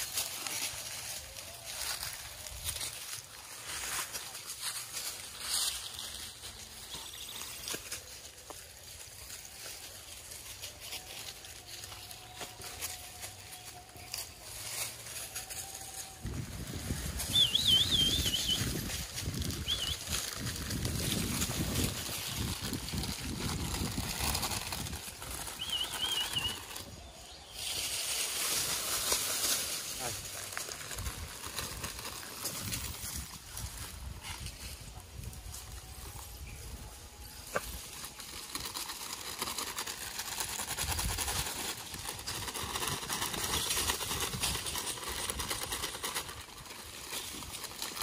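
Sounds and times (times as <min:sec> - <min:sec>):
rustling on dry leaves: 0:00.0 - 0:48.0
bird warbling whistle: 0:17.2 - 0:18.7, 0:25.6 - 0:26.8.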